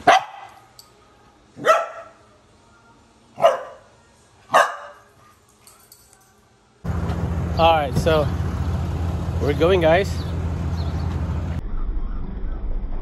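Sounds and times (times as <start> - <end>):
dog barking: 0.0 - 0.7, 1.6 - 2.2, 3.4 - 3.9, 4.5 - 5.4.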